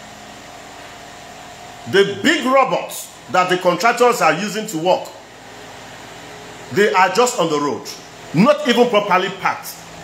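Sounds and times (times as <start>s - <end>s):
background hum and hiss: 0.0s - 10.0s
person speaking: 1.8s - 5.2s, 6.7s - 10.0s.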